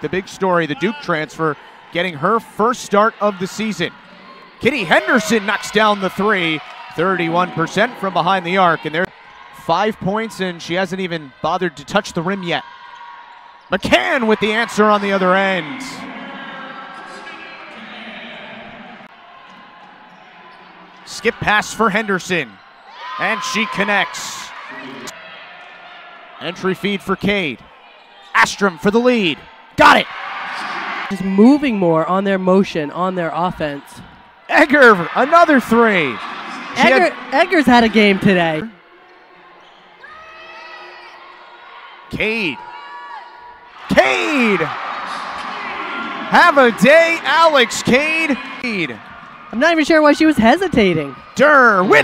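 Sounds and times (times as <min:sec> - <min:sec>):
murmur of voices in hall: 0:00.0 - 0:52.0.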